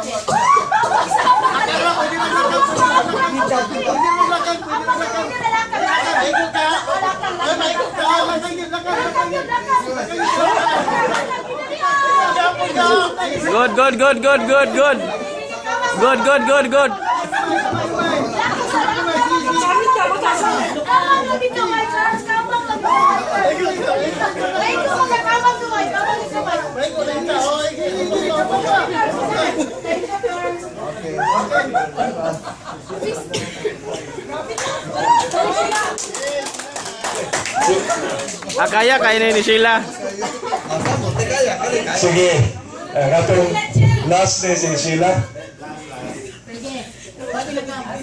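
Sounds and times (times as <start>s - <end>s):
crowd talking and calling out: 0.0s - 48.0s
group chatter: 0.0s - 48.0s.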